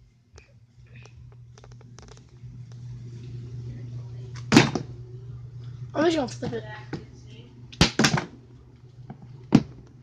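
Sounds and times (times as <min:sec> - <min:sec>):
items knocking on shelf: 0:09.4 - 0:09.9.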